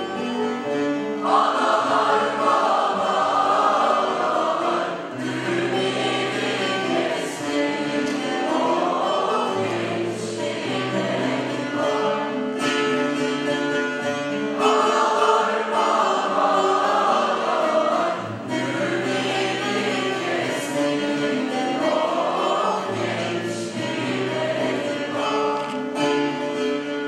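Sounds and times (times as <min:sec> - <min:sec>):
choir singing: 0:00.0 - 0:26.9
instrumental accompaniment: 0:00.0 - 0:27.0.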